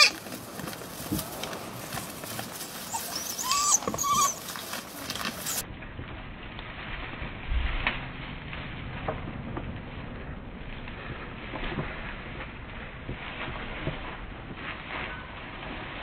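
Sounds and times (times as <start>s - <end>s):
hare squealing: 0.0s - 0.2s, 2.9s - 4.4s
rustling: 0.0s - 16.0s.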